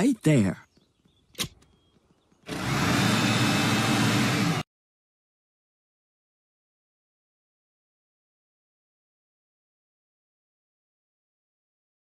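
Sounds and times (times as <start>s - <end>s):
power blower motor drone: 2.5s - 4.6s.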